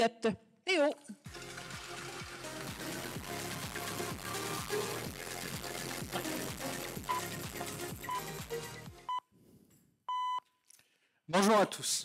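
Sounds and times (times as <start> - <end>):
short electronic beeps: 8.1 - 8.3, 10.1 - 10.4.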